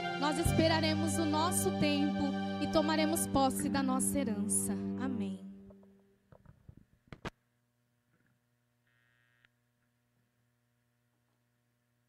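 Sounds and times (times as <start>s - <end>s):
faint mains hum: 5.4s - 12.0s.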